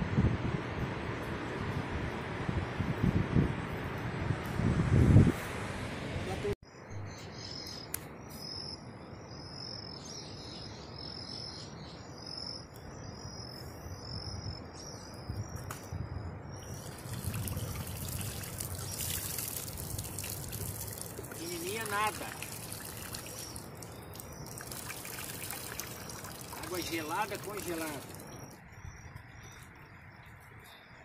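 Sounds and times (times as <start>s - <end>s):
water trickling and splashing: 16.5s - 28.6s.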